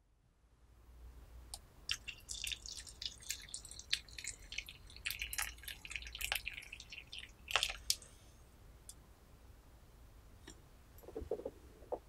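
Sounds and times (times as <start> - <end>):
water poured into teapot: 1.9 - 8.0
water splashing and pattering: 1.9 - 8.0.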